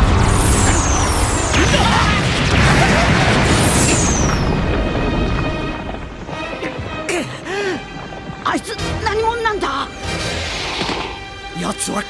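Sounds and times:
high whistling tones falling: 0.0 - 1.8
explosion rumble and hiss: 0.0 - 7.0.

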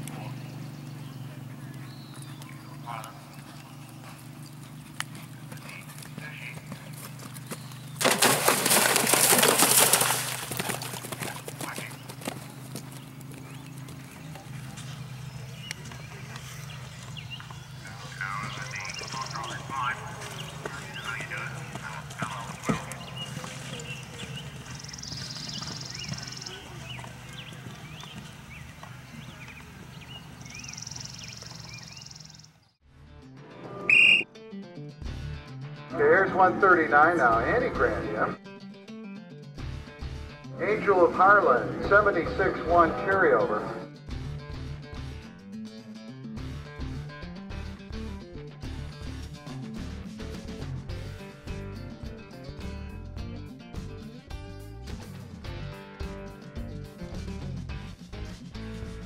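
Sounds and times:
hoofbeats on turf: 0.0 - 32.4, 47.7 - 59.0
background voices: 17.8 - 24.5, 40.6 - 43.8.

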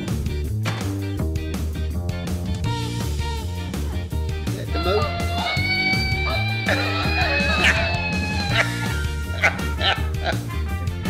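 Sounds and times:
background music with guitar and bass: 0.0 - 11.0
toy dog yapping: 4.8 - 10.1.

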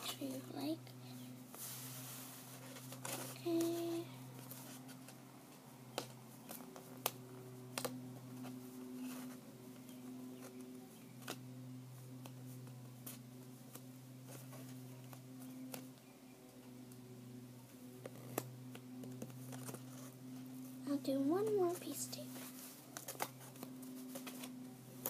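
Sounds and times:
steady low hum: 0.0 - 25.0
paper and tape handling clicks: 5.9 - 8.0, 22.8 - 25.0.

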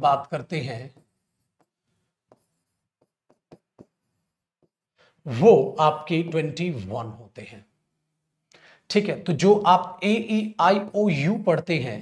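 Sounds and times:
marker pen on whiteboard: 0.0 - 5.0, 9.8 - 12.0.

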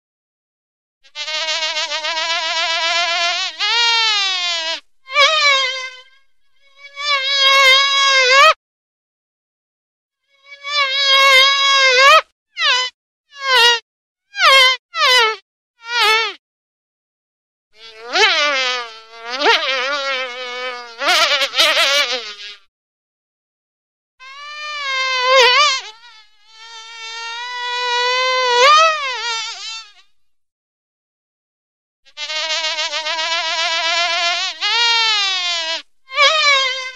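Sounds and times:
fly buzzing: 1.0 - 8.6, 10.2 - 13.8, 14.4 - 16.4, 17.8 - 22.7, 24.2 - 30.2, 32.1 - 36.9.

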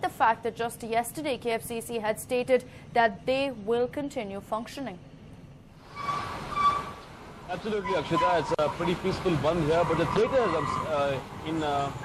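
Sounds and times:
street traffic hiss: 5.7 - 12.0.

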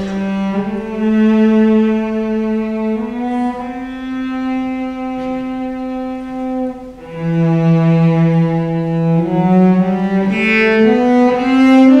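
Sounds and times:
bowed cello sustained notes: 0.0 - 12.0.

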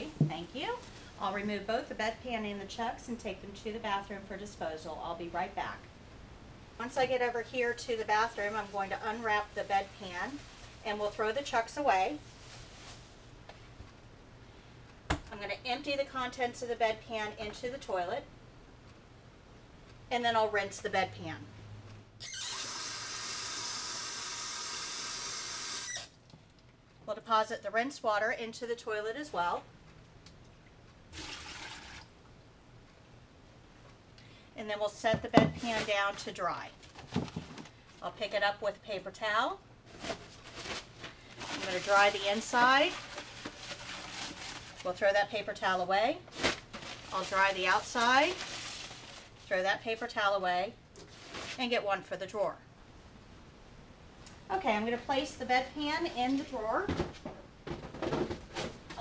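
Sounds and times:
paper towel rustling: 7.6 - 13.4, 35.6 - 37.7, 39.9 - 45.1, 45.7 - 49.6, 51.1 - 51.7
water splashing into a bucket: 31.1 - 32.1
paper towel rubbing plastic: 39.9 - 45.0, 46.3 - 49.5.

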